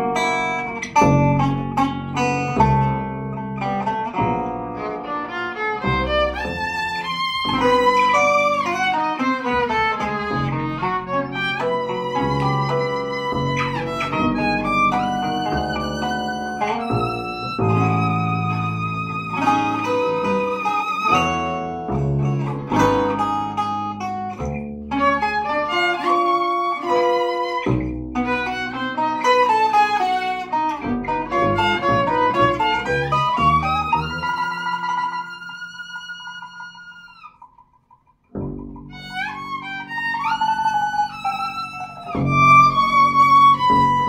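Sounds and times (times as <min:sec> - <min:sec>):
double bass: 0:00.0 - 0:37.0, 0:38.3 - 0:44.0
violin: 0:00.0 - 0:37.5, 0:38.3 - 0:44.0
acoustic guitar: 0:00.0 - 0:37.8.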